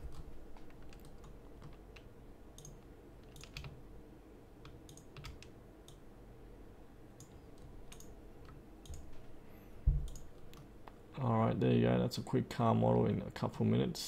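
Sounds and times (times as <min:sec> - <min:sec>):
faint steady hum: 0:00.0 - 0:14.0
computer mouse clicking: 0:00.1 - 0:03.8, 0:04.6 - 0:06.0, 0:07.2 - 0:09.1, 0:10.0 - 0:11.0.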